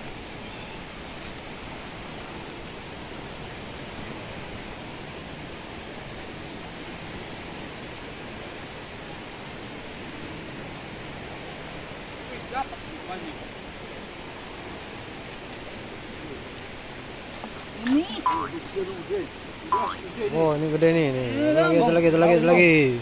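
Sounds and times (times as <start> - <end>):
river rushing: 0.0 - 23.0.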